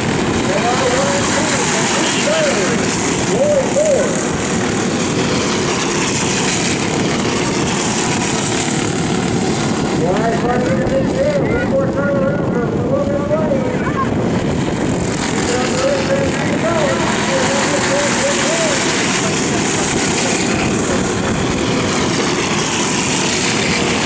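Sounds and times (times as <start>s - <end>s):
racing kart engine: 0.0s - 24.0s
steady rush of noise: 0.0s - 24.0s.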